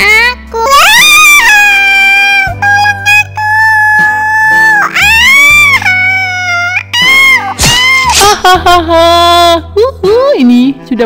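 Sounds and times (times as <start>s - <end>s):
high-pitched cartoon voice wailing: 0.0s - 8.3s
background music: 0.0s - 11.0s.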